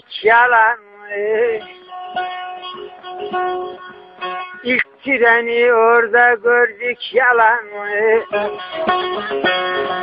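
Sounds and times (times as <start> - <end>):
plucked lute notes: 0.0 - 10.0.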